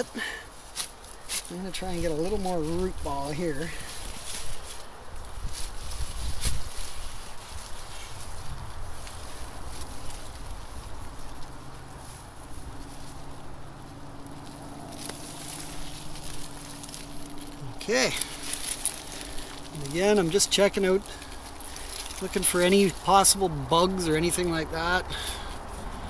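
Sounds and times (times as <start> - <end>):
leaves rustling: 0.0 - 26.0
soil scraping and crumbling: 0.0 - 26.0.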